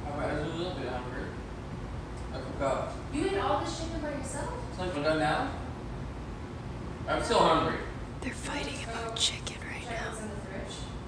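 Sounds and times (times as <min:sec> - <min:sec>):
woman whispering: 0:08.2 - 0:10.8.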